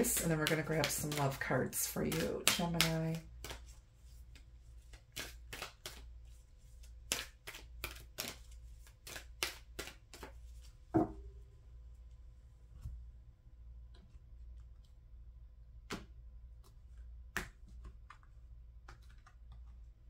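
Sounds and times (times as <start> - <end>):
cards being shuffled: 0.0 - 10.8, 15.9 - 20.0.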